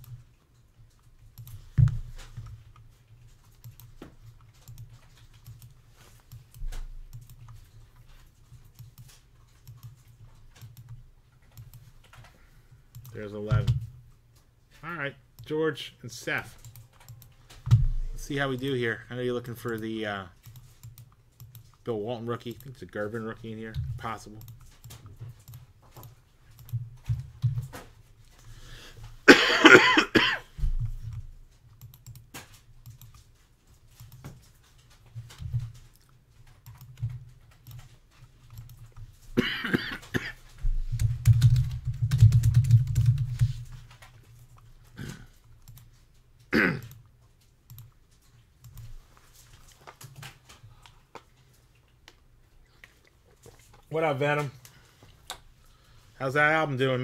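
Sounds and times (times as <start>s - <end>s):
computer mouse clicking: 0.0s - 14.1s, 16.5s - 22.8s, 23.4s - 28.5s, 30.8s - 39.2s, 40.9s - 53.9s
man coughing: 29.3s - 30.6s, 39.4s - 40.4s, 46.5s - 46.9s.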